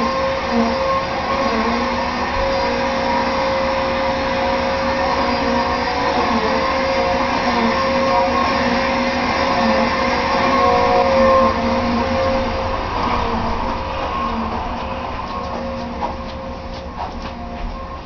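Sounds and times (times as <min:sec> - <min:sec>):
vacuum cleaner running: 0:00.0 - 0:18.0.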